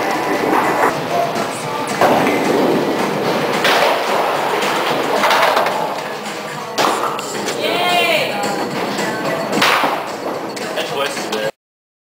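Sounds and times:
bowling ball rolling on wooden lane: 0:00.0 - 0:01.1, 0:02.0 - 0:07.6, 0:08.4 - 0:10.7
bowling alley din: 0:00.0 - 0:11.5.

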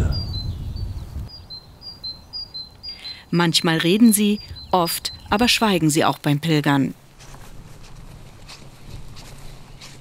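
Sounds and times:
songbird singing high notes: 0:00.0 - 0:06.0
low wind rumble: 0:00.0 - 0:06.2, 0:06.9 - 0:10.0.

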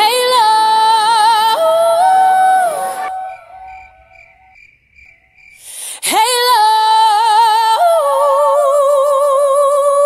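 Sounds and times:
cricket chirping: 0:02.0 - 0:05.8
faint wavering held tone: 0:02.6 - 0:04.6.

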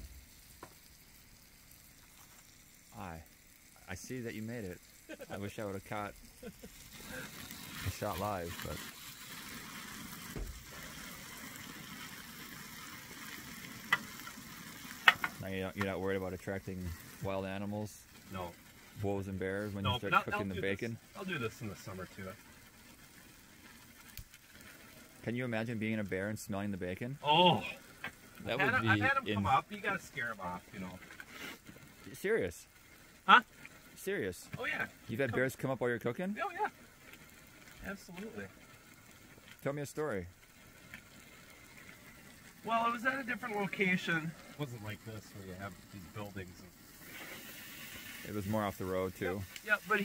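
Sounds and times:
food sizzling in pan: 0:00.0 - 0:50.0.

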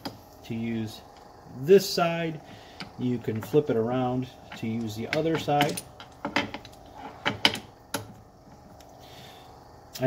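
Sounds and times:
metal clicks and clacks: 0:04.5 - 0:08.1.

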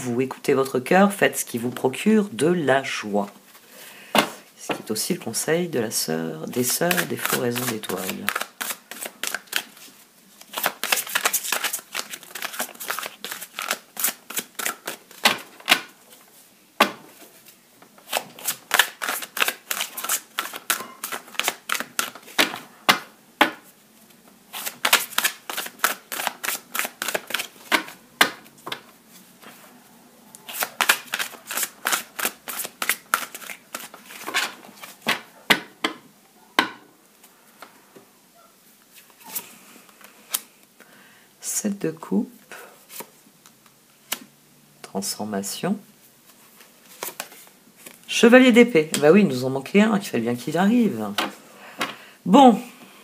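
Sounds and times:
cards being shuffled: 0:06.4 - 0:16.2, 0:17.4 - 0:23.1, 0:24.5 - 0:28.8, 0:30.4 - 0:35.3, 0:46.3 - 0:48.0.

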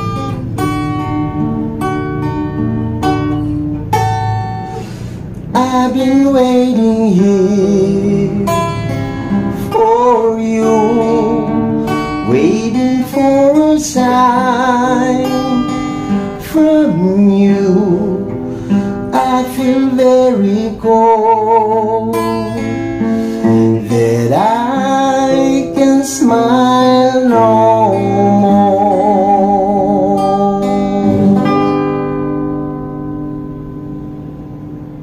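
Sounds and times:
acoustic guitar playing slowly: 0:00.0 - 0:35.0
man singing with vibrato: 0:05.5 - 0:32.2.

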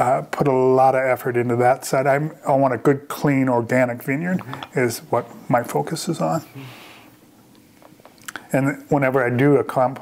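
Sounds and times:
man speaking: 0:00.0 - 0:06.8, 0:08.3 - 0:10.0
faint mouth clicks: 0:08.1 - 0:08.5.

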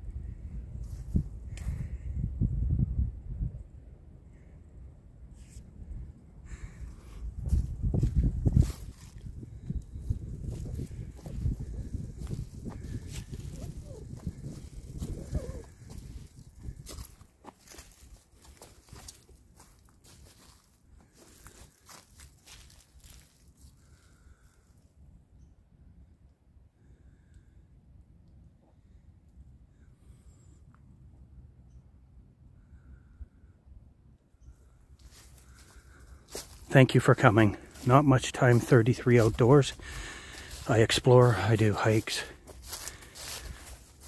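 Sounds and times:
footsteps on dry leaves: 0:07.5 - 0:09.4, 0:10.0 - 0:24.2, 0:35.0 - 0:44.0.

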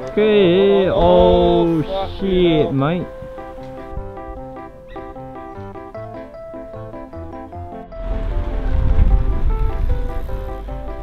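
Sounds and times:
background music: 0:00.0 - 0:11.0
car driving past: 0:07.9 - 0:11.0.

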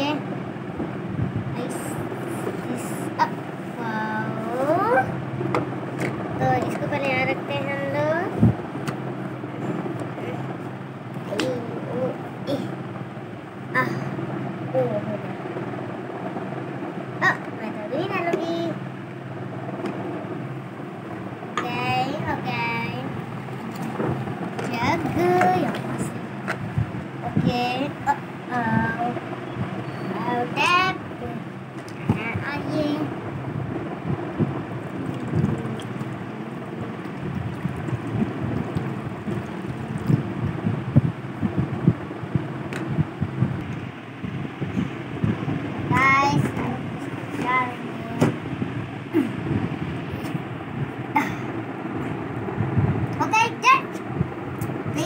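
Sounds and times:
steady low hum: 0:00.0 - 0:55.0
child babbling and exclaiming: 0:01.6 - 0:05.2, 0:06.4 - 0:08.4, 0:11.3 - 0:12.8, 0:13.8 - 0:14.2, 0:24.7 - 0:26.2, 0:27.2 - 0:29.2, 0:30.1 - 0:31.4, 0:32.0 - 0:33.1, 0:45.9 - 0:48.4, 0:53.2 - 0:54.0.

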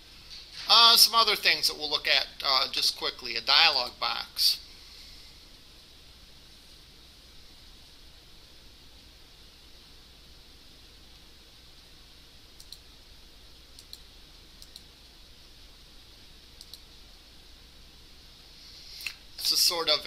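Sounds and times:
low room hiss: 0:00.0 - 0:20.0.

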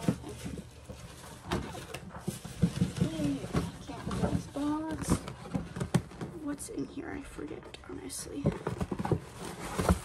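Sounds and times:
gift packaging rustling: 0:00.0 - 0:10.0.

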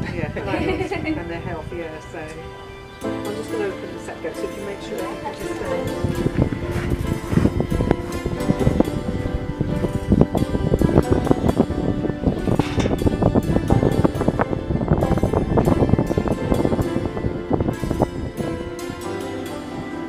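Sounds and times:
music with percussive beat: 0:12.4 - 0:19.7.

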